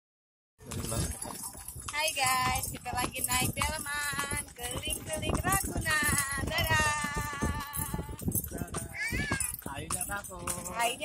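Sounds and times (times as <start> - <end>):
cart rattling: 0.6 - 11.0
horse hooves clopping: 0.6 - 11.0.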